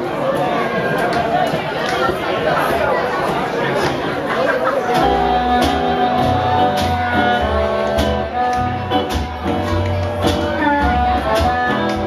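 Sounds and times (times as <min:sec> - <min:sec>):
audience chatter: 0:00.0 - 0:12.0.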